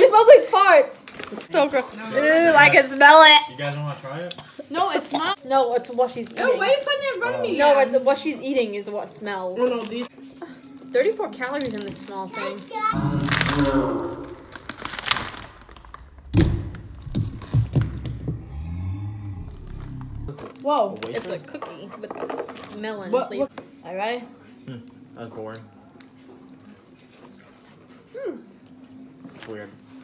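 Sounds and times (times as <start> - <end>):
plastic snack wrapper crackling: 11.0 - 13.0, 14.5 - 16.2
woman humming hmm: 28.1 - 28.6.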